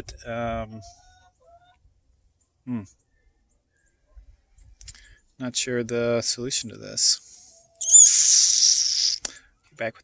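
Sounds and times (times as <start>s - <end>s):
faint bird chirps: 2.4s - 4.8s, 7.3s - 9.8s.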